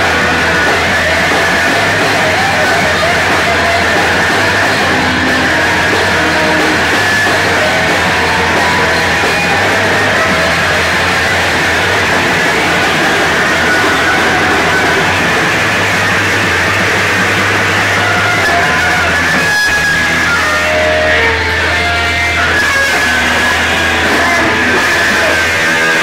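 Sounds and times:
distorted punk band playing live: 0:00.0 - 0:26.0.

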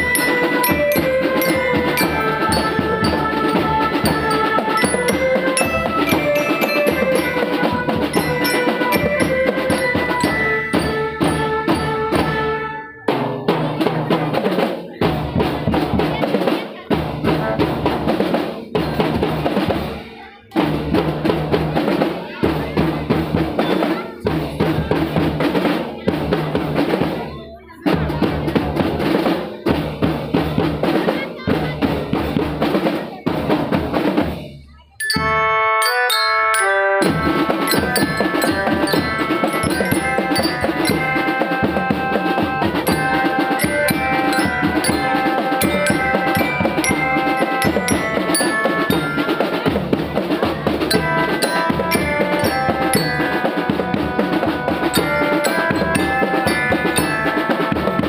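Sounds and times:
snare drum beating: 0:00.0 - 0:16.4, 0:36.6 - 0:58.0
drum band melody: 0:00.0 - 0:58.0.

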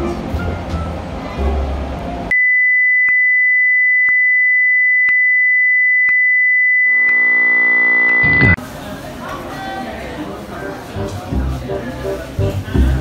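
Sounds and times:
high electronic test tone: 0:02.3 - 0:08.6
buzzy low drone: 0:06.9 - 0:08.6.

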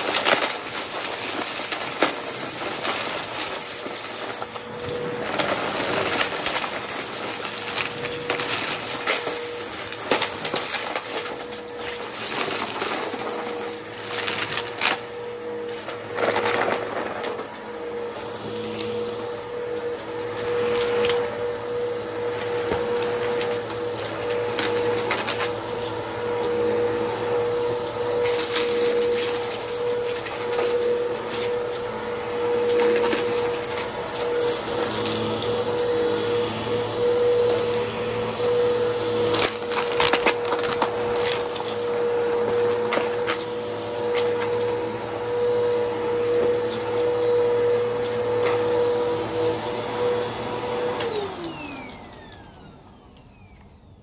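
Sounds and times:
debris rattling in vacuum: 0:00.0 - 0:52.0
vacuum cleaner motor whine: 0:00.0 - 0:54.0.

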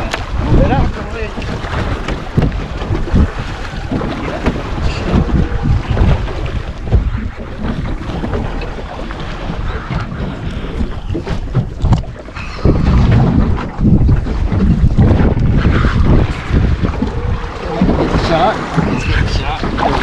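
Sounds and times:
water lapping at hull: 0:00.0 - 0:20.0
wind buffeting microphone: 0:00.0 - 0:20.0.

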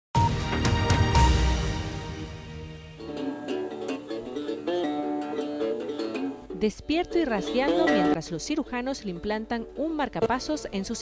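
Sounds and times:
resonator guitar plucking: 0:02.6 - 0:10.3.

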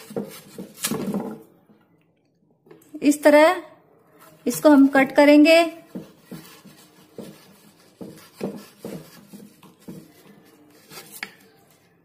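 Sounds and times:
knife cutting raw potato: 0:00.0 - 0:01.5, 0:05.9 - 0:11.6.

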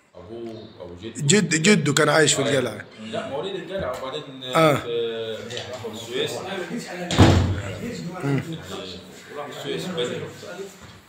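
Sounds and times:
quiet talk: 0:00.2 - 0:11.0
sudden loud bang: 0:07.1 - 0:07.8.

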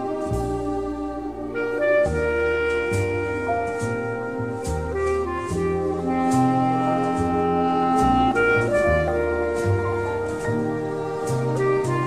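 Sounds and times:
gentle orchestral music: 0:00.0 - 0:12.0.

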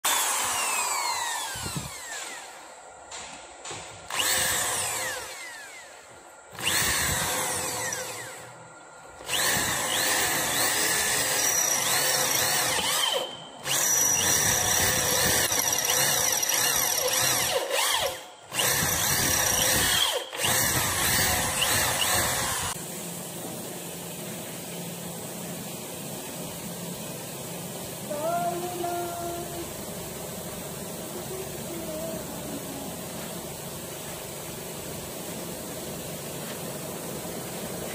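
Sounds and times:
electric drill boring through steel: 0:00.0 - 0:02.6, 0:04.1 - 0:06.0, 0:06.6 - 0:08.6, 0:09.2 - 0:22.8.

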